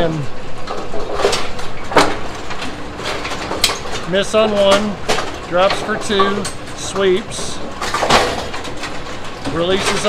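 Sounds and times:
pinsetter machine running: 0.0s - 10.0s.

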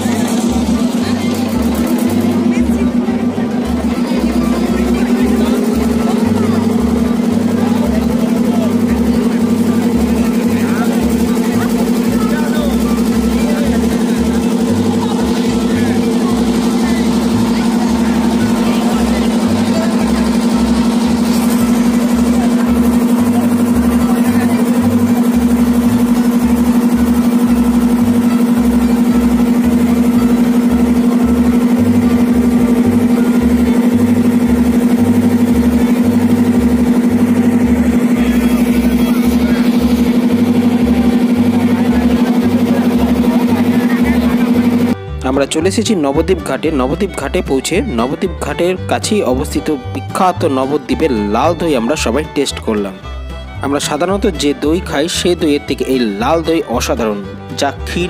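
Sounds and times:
passengers' voices: 0.0s - 55.3s
boat engine droning: 0.0s - 58.0s.

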